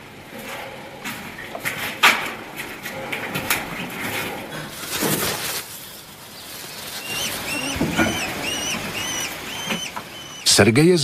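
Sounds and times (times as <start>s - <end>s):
falcon chicks calling: 6.3s - 11.0s.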